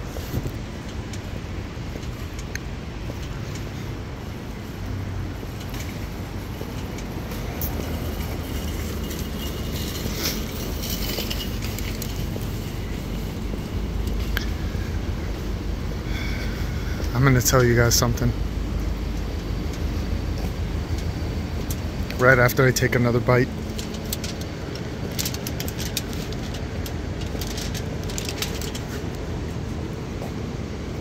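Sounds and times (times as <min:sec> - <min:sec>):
traffic rumble: 0:00.0 - 0:31.0.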